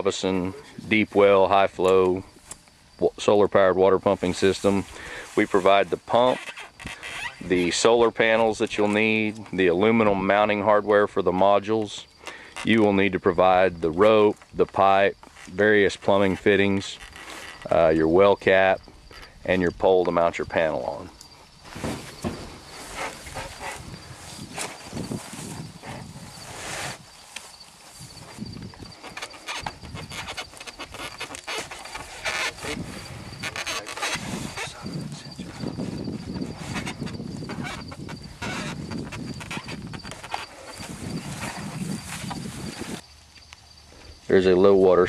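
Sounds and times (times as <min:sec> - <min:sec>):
high cricket chirp: 0:00.0 - 0:45.0
electrical tape rustling and crackling: 0:04.1 - 0:10.8, 0:11.4 - 0:19.2, 0:20.0 - 0:44.1.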